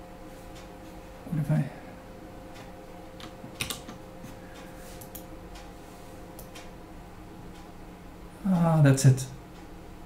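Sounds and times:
faint steady hum: 0.0s - 10.0s
keyboard keys clicking: 3.2s - 4.0s.

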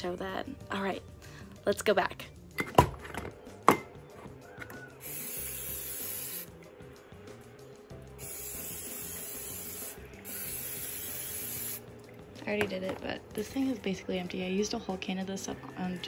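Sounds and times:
aerosol spray hissing: 5.0s - 6.5s, 8.1s - 11.9s.

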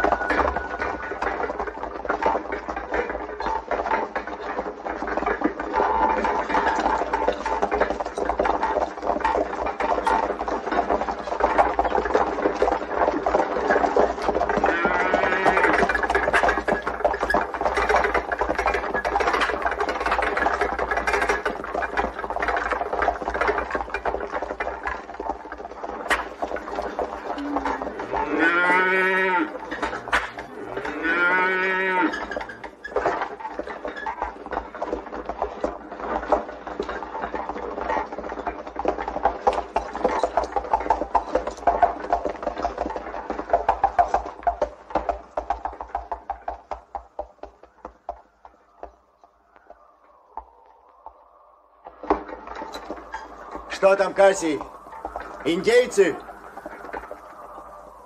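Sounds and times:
busy clatter: 0.0s - 48.8s.

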